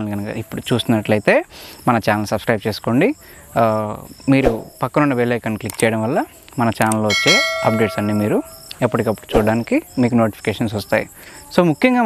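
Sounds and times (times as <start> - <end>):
man talking: 0.0 - 11.0
crickets chirping: 0.0 - 12.0
bell chime ding: 7.1 - 8.7.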